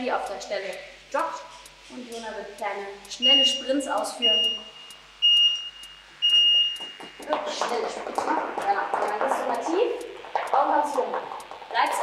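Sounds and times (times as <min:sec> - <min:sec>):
timer beeps: 0:00.0 - 0:12.0.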